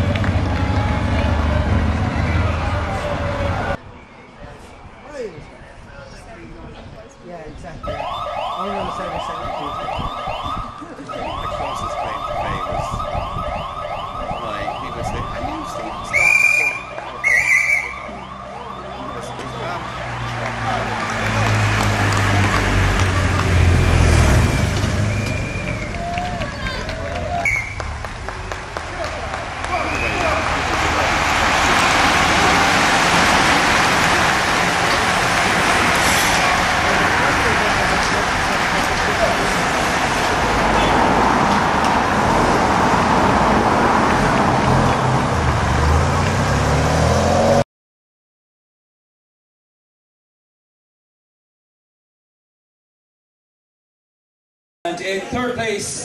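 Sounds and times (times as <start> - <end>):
motor vehicle rumbling past: 0.0 - 3.8, 18.2 - 47.6
cyclists rushing past: 0.0 - 7.0, 7.6 - 47.6
siren sweeping: 7.8 - 21.2.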